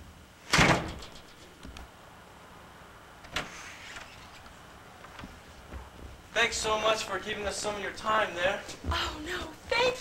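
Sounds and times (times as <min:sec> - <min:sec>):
wooden door banging: 0:00.5 - 0:01.2
door rattling: 0:00.5 - 0:01.5.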